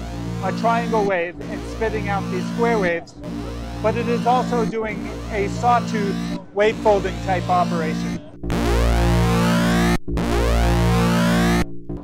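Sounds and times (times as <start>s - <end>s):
buzzy synthesizer tone: 0.0s - 11.8s.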